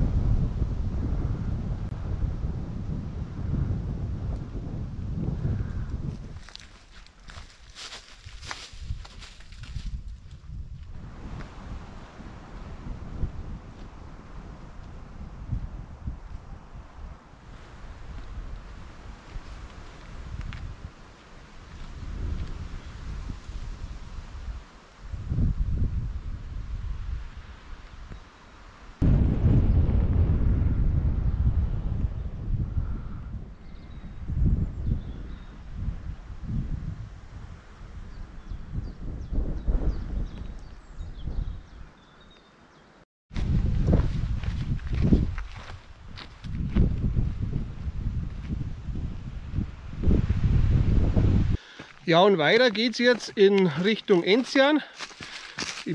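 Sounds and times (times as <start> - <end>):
wind buffeting microphone: 0.0 - 28.2, 28.8 - 42.4, 43.3 - 55.9.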